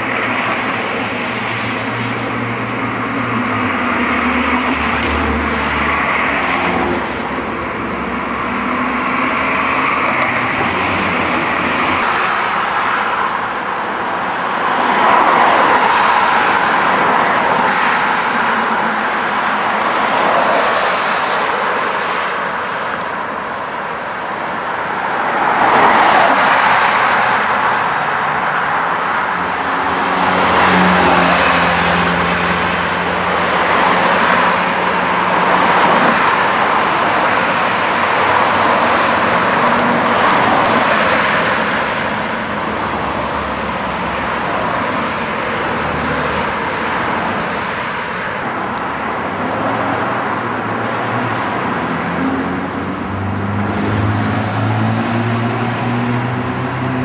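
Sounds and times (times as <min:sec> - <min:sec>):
cars passing: 0:00.0 - 0:57.0.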